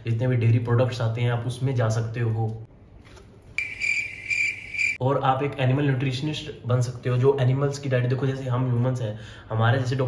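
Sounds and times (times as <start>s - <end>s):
cricket chirping: 3.6s - 5.0s.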